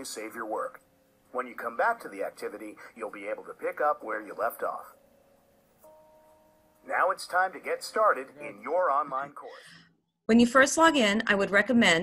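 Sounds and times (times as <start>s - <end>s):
man speaking: 0.0s - 5.0s, 6.8s - 9.8s
faint steady chord tone: 0.0s - 9.8s.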